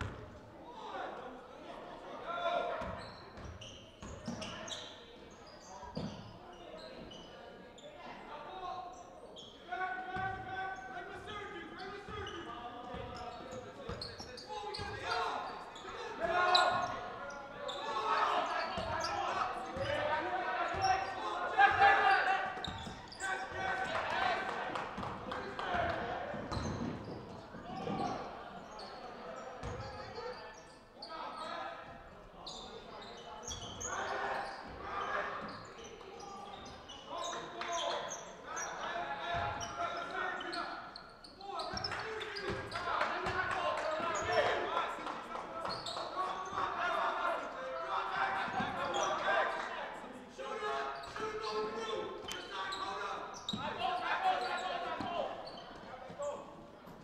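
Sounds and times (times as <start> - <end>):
people calling out: 50.4 - 55.6.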